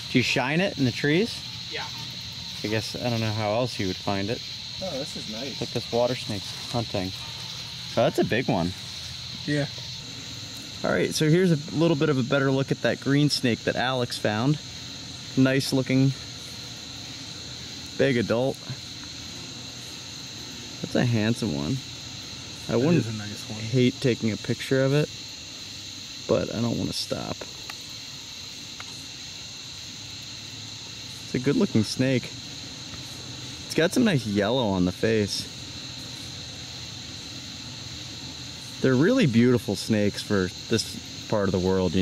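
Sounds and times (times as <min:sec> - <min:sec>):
night insects trilling: 0:00.0 - 0:42.0.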